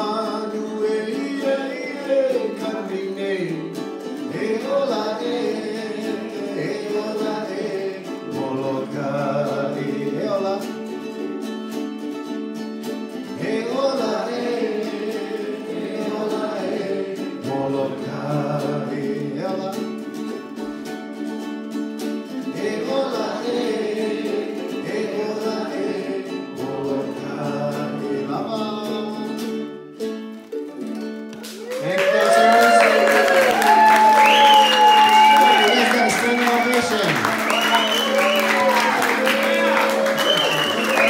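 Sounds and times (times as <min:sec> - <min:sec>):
ukuleles strumming chords: 0:00.0 - 0:41.0
voices singing along: 0:04.3 - 0:10.7, 0:13.4 - 0:19.6, 0:22.4 - 0:29.1, 0:31.8 - 0:41.0.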